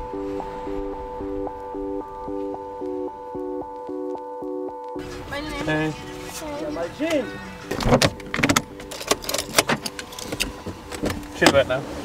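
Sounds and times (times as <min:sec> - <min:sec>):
clicks and knocks inside a car: 0:07.7 - 0:11.7.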